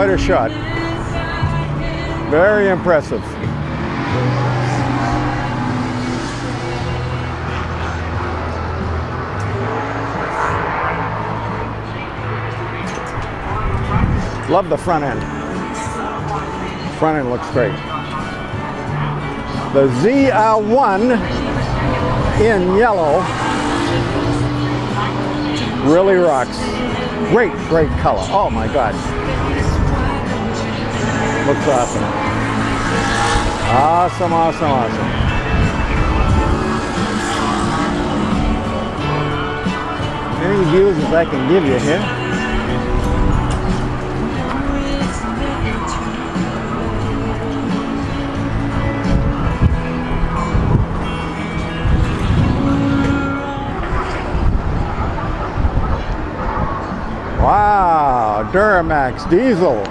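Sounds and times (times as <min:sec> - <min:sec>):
background music: 0:00.0 - 0:59.9
outdoor background noise: 0:00.0 - 0:59.9
low engine hum: 0:00.4 - 0:25.9, 0:28.3 - 0:57.3
wind buffeting microphone: 0:08.7 - 0:15.0, 0:27.0 - 0:46.1, 0:48.4 - 0:57.5.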